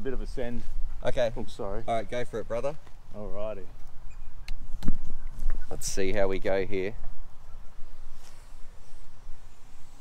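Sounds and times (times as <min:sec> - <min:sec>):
wind rumble on microphone: 0:03.9 - 0:10.0.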